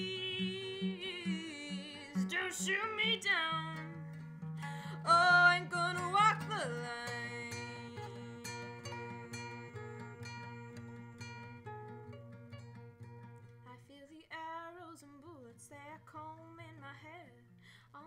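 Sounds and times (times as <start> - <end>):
person singing wordlessly: 0.0 - 3.9, 4.9 - 11.7
fingerpicked classical guitar: 0.0 - 18.0.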